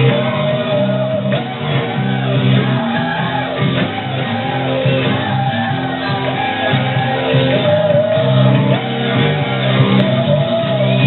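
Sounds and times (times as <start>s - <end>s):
person singing: 0.0s - 11.0s
rock band playing live: 0.0s - 11.0s.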